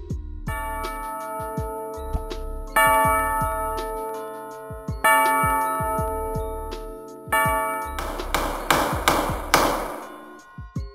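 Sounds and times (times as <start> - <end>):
bell-like chord ringing: 0.5 - 10.4.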